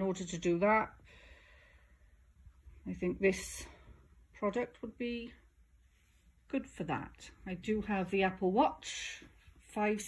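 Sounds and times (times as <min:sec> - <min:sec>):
low steady background hum: 0:00.0 - 0:10.0
person speaking: 0:06.5 - 0:10.0.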